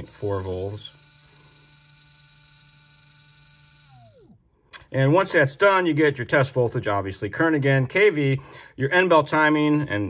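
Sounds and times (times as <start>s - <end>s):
electric motor whining: 0.0s - 4.4s.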